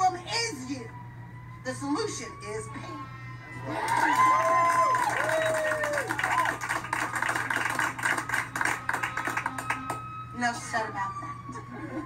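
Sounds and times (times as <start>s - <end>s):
steady low hum: 0.0s - 12.0s
people clapping: 3.7s - 10.1s.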